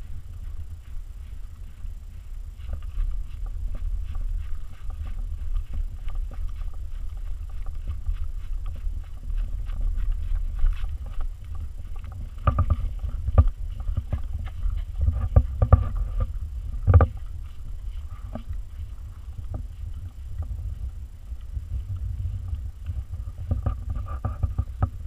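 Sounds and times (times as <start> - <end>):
dog paws running on grass: 0.0 - 25.0
wind rumble on microphone: 0.0 - 25.0.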